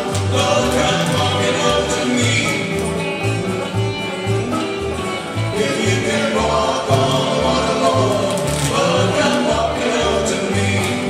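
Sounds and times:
group singing in harmony: 0.0s - 3.6s, 5.2s - 11.0s
acoustic guitar: 0.0s - 11.0s
banjo: 0.0s - 11.0s
electric guitar: 0.0s - 11.0s
upright bass: 0.0s - 11.0s.

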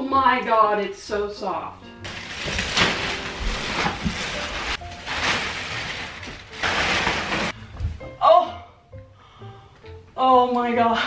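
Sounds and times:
plastic wrapping crinkling: 2.0s - 7.6s.

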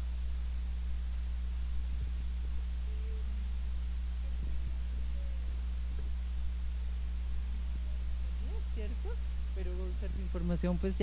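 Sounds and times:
faint high-pitched hum: 0.0s - 11.0s
low electrical hum: 0.0s - 11.0s.

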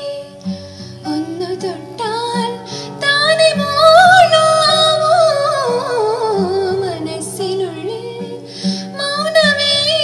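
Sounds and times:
acoustic guitar strumming: 0.0s - 10.0s
woman singing: 0.0s - 10.0s.

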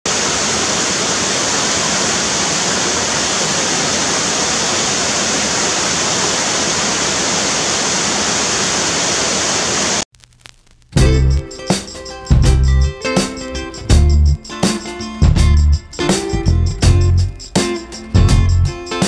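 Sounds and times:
waterfall rushing into pool: 0.1s - 10.0s.

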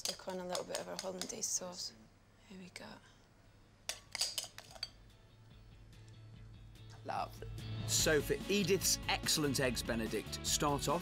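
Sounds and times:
metal spoon clinking glass bowl: 3.9s - 5.0s.

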